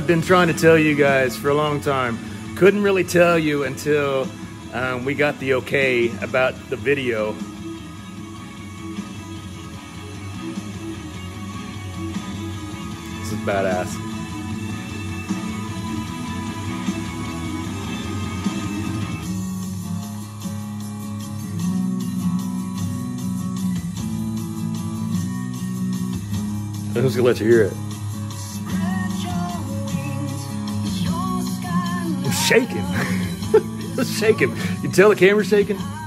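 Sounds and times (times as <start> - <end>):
rock song from radio: 0.0 - 36.0.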